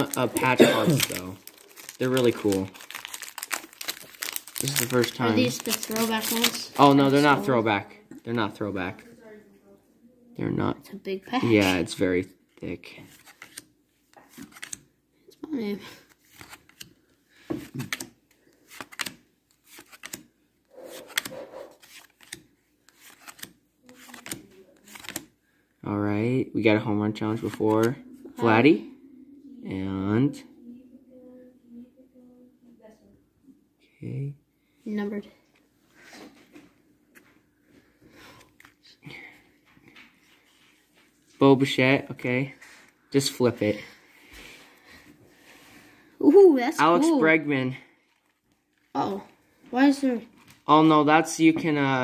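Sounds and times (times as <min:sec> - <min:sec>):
cards sliding and tapping: 0:13.1 - 0:14.9, 0:16.1 - 0:20.3, 0:20.9 - 0:25.3.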